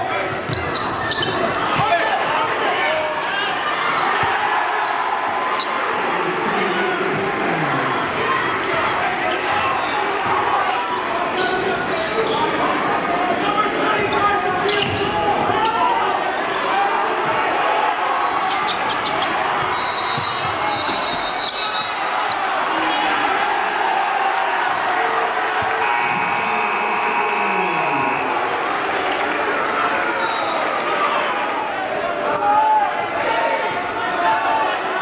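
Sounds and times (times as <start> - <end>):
crowd chatter: 0.0 - 35.0.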